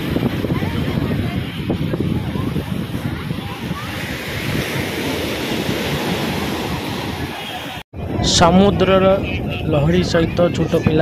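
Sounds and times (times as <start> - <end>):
surf washing onto beach: 0.0 - 11.0
wind buffeting microphone: 0.0 - 11.0.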